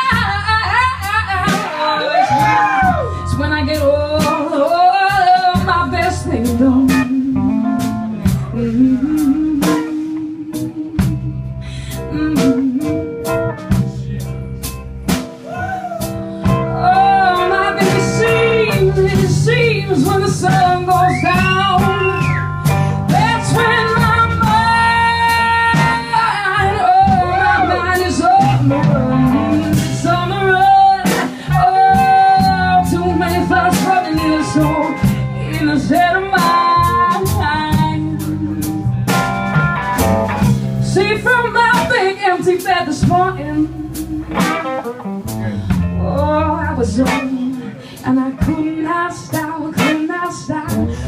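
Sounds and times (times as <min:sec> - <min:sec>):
bass line: 0:00.0 - 0:51.0
blues band playing: 0:00.0 - 0:51.0
live instrumental backing: 0:00.0 - 0:51.0.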